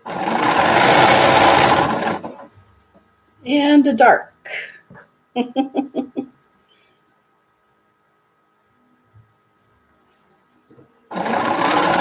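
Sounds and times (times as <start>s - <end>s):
sewing machine running fast: 0.0s - 2.4s, 11.1s - 12.0s.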